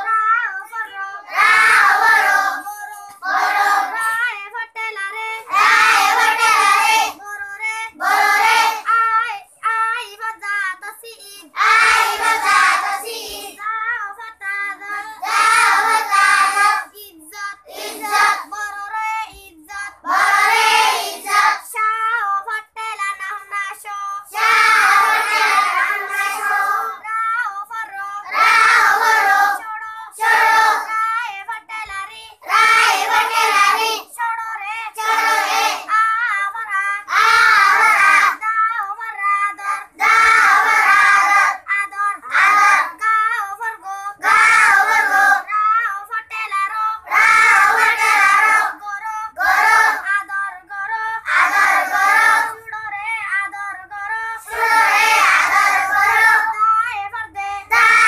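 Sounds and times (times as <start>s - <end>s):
children chanting in unison: 1.1s - 4.2s, 5.4s - 7.2s, 7.9s - 9.0s, 11.3s - 13.6s, 14.8s - 18.8s, 19.8s - 21.7s, 24.3s - 27.0s, 28.2s - 29.6s, 30.2s - 31.1s, 32.4s - 34.1s, 34.9s - 35.9s, 37.0s - 38.4s, 39.5s - 43.0s, 44.1s - 45.5s, 47.1s - 50.1s, 51.3s - 52.6s, 54.4s - 56.6s, 57.7s - 58.0s.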